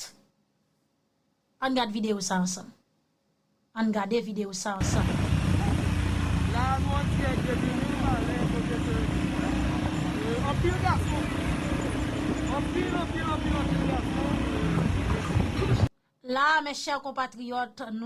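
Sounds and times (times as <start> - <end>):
low rumble of vehicles: 4.8 - 15.9
voices calling out: 4.8 - 15.9.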